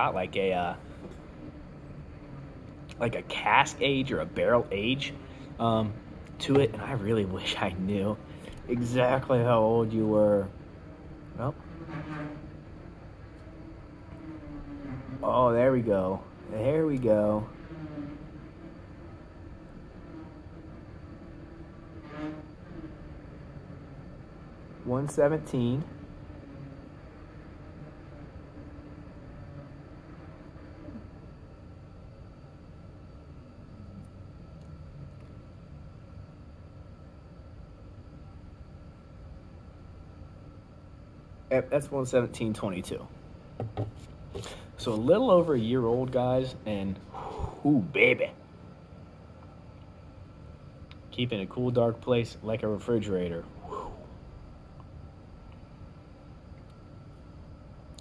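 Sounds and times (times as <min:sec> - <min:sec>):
low hum: 0:00.0 - 0:58.0.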